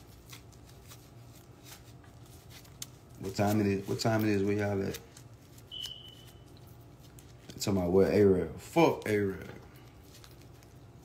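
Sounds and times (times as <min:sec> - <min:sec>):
rustling handling noise: 0:00.0 - 0:11.0
steady low hum: 0:00.0 - 0:11.0.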